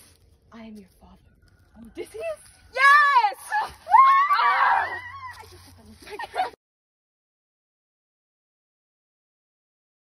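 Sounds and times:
girls squealing: 0:02.8 - 0:05.7
girls laughing: 0:03.7 - 0:06.6.

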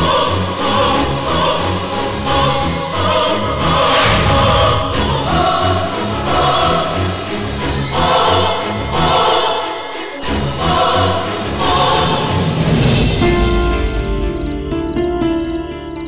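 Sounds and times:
choir singing sustained chords: 0:00.0 - 0:14.9.

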